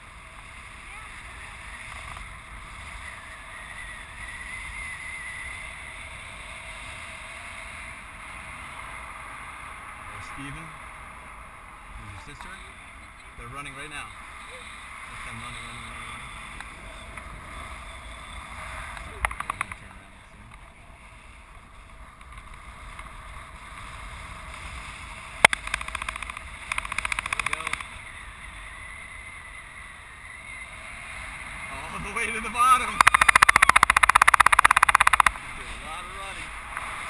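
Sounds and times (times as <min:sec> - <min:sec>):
fluttering wind buffet: 0:14.3 - 0:37.0.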